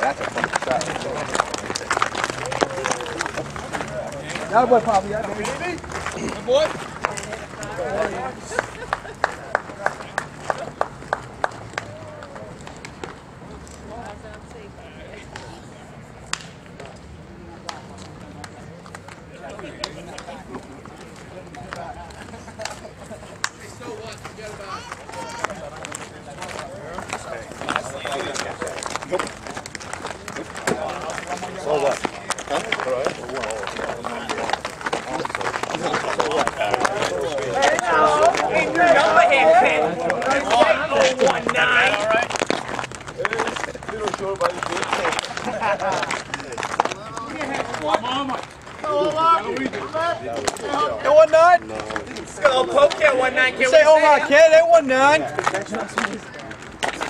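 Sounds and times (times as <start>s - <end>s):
indistinct chatter: 0.0s - 57.0s
sharp hand claps: 8.5s - 13.2s.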